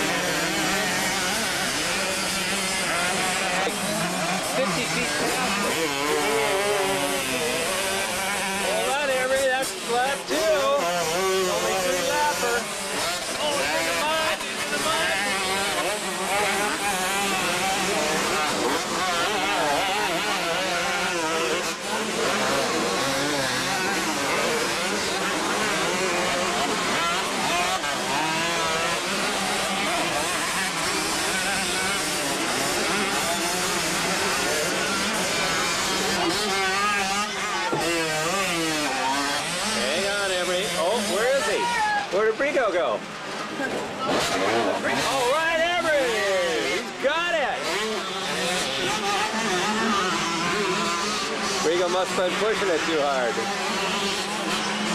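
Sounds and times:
motocross bikes revving: 0.0 - 54.9.

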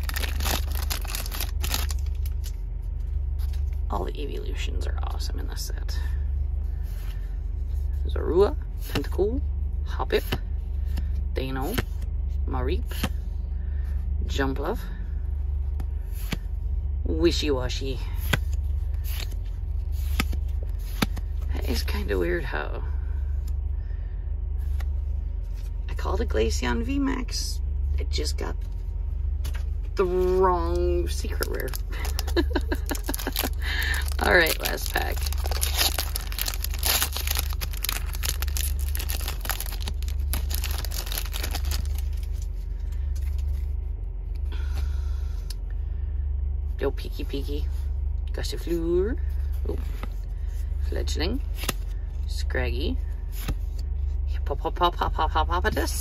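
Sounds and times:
foil wrapper tearing and crinkling: 0.0 - 2.5, 31.2 - 42.5
low rumble in a car cabin: 0.0 - 56.0.

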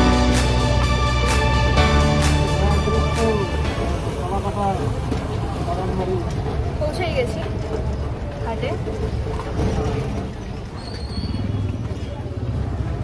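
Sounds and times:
vehicle rolling rumble: 2.5 - 13.0.

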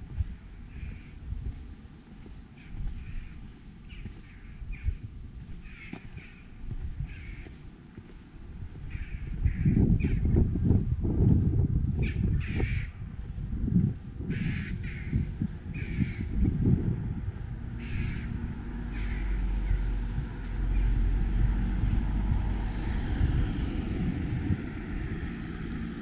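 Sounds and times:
low irregular rumble: 0.0 - 26.0
crows cawing: 0.7 - 1.2, 2.6 - 5.0, 5.6 - 7.6, 8.8 - 10.2, 12.0 - 12.9, 14.3 - 16.3, 17.8 - 20.0.

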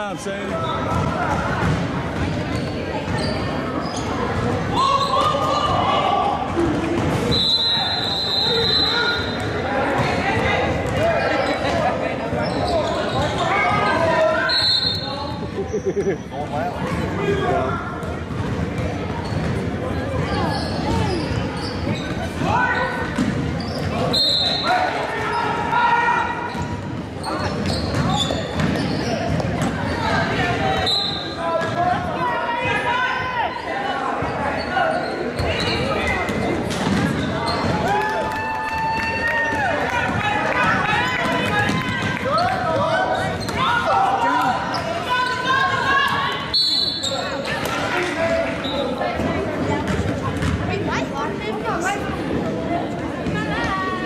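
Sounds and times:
people shouting in a hall: 4.7 - 6.5, 24.1 - 26.6, 30.1 - 35.3, 37.4 - 49.0.

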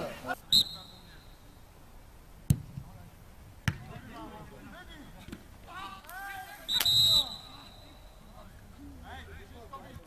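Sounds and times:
referee's whistle blast: 0.5 - 1.4, 6.6 - 8.2
football kicked hard: 3.6 - 4.1.

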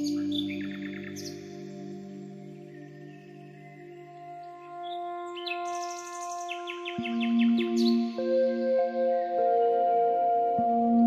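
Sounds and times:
birds chirping: 0.0 - 9.7
soft ambient music: 0.0 - 11.0.

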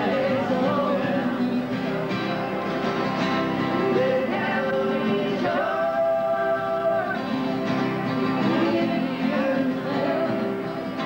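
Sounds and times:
woman and man singing: 0.0 - 1.9, 3.8 - 7.4, 8.4 - 10.9
strummed acoustic guitars: 0.0 - 11.0.

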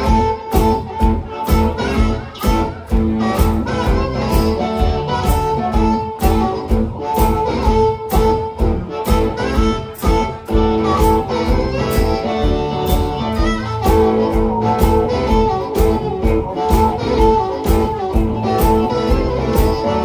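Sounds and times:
amplified harmonica wailing: 0.0 - 20.0
guitar: 0.0 - 20.0.

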